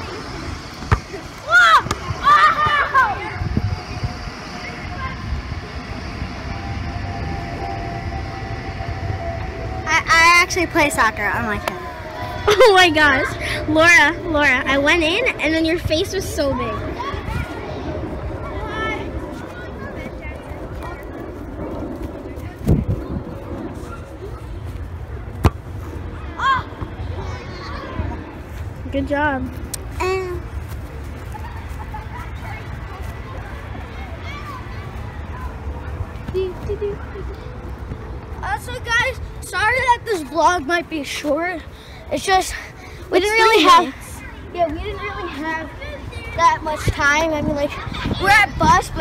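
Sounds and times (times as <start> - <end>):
children calling out: 0.0 - 21.2, 26.1 - 28.4
faint steady hum: 0.0 - 48.2
low outdoor rumble: 0.0 - 49.0
ball kick thump: 0.8 - 1.2, 25.4 - 25.6.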